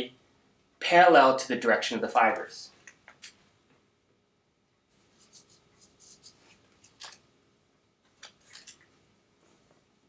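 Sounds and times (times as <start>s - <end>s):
electrode pads crinkling: 8.0s - 10.0s.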